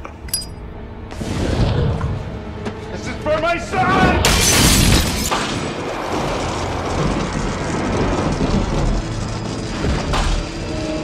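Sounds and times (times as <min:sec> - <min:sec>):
low rumble of large fire: 0:00.8 - 0:11.0.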